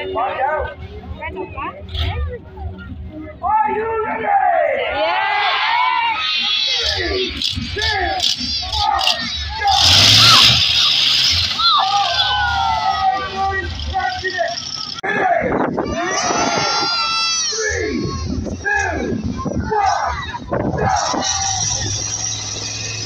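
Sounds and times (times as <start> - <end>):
voices talking: 0.0 - 23.0
loud rushing noise with low rumble: 0.4 - 17.1, 17.8 - 23.0.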